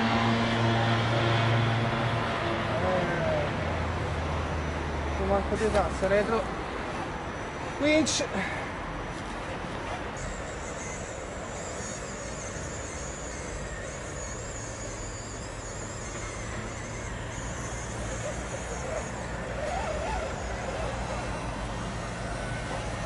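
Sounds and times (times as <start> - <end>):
electric motor whining: 10.2 - 23.0.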